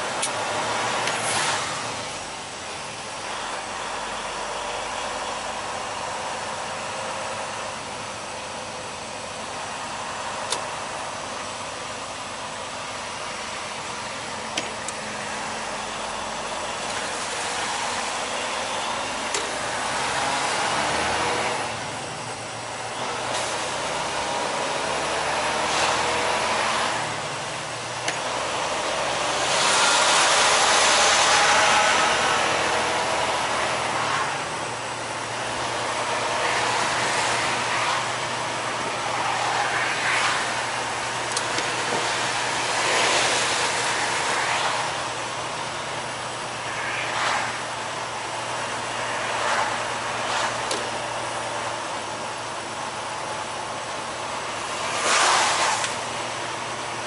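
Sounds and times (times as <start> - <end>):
truck engine running: 0.0 - 57.0
tyre noise on wet road: 0.0 - 57.0.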